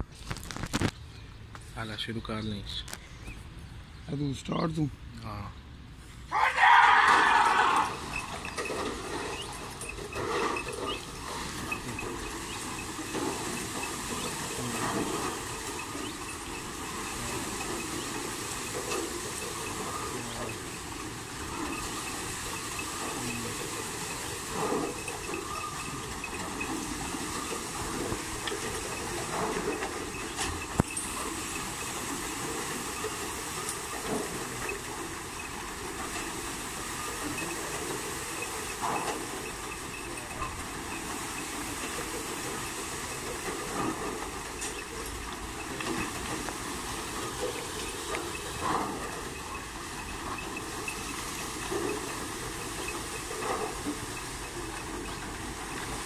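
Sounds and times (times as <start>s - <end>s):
wooden water wheel hissing: 3.1s - 56.0s
gearing clatter: 6.6s - 56.0s.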